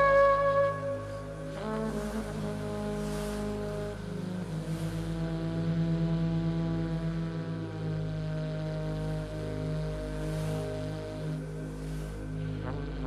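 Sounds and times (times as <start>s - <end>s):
ambient music drone: 0.0s - 13.0s.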